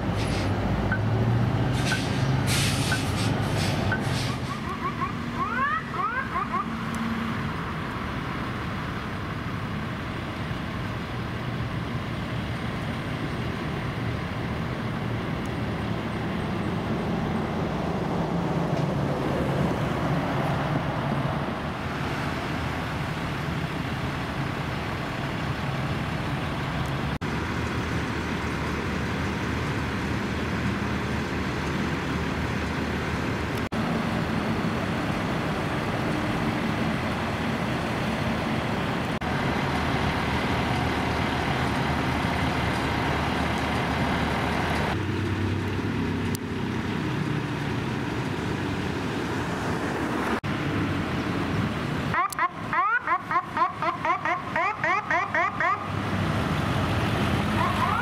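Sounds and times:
fire truck engines idling: 0.0s - 20.2s, 20.9s - 58.0s
street traffic noise: 0.0s - 58.0s.

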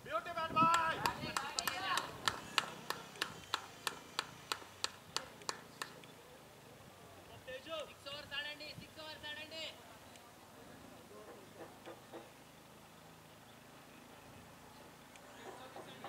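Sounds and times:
voices calling out: 0.0s - 16.0s
person clapping hands: 0.6s - 6.0s.

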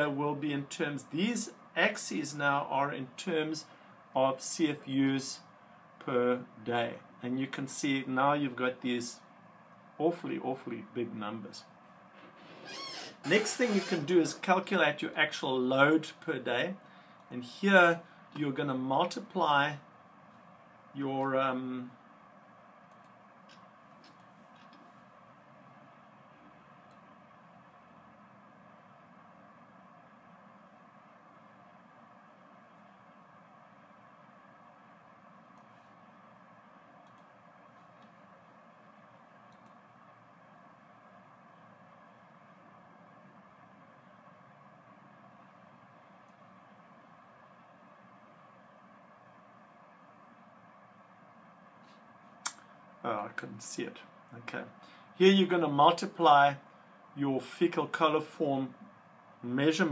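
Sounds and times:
faint hum: 0.0s - 59.9s
faint room hiss: 0.0s - 59.9s
computer mouse clicks: 22.9s - 24.9s, 39.5s - 39.8s
sharp click: 52.4s - 52.6s.

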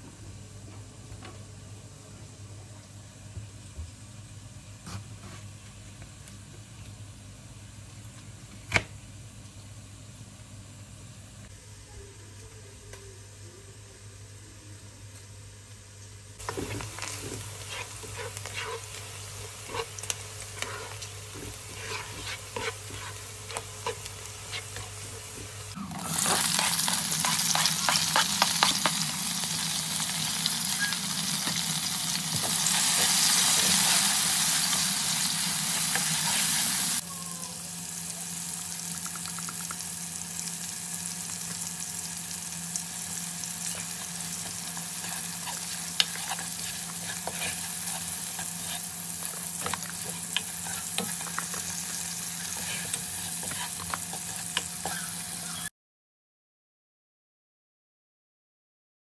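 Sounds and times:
spatula clicking and scraping wok: 16.4s - 25.5s, 26.2s - 29.4s, 43.6s - 55.4s
tomatoes sizzling in hot oil: 16.4s - 55.7s.

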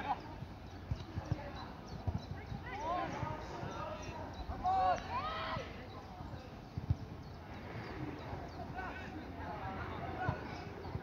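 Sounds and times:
voices calling out: 0.0s - 11.0s.

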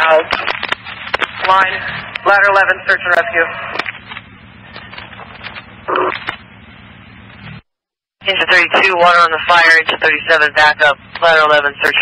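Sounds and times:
radio channel hiss: 1.4s - 3.9s, 8.2s - 12.0s.

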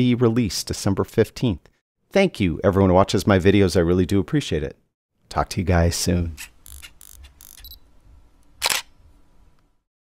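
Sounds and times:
camera shutter click: 8.6s - 9.0s.

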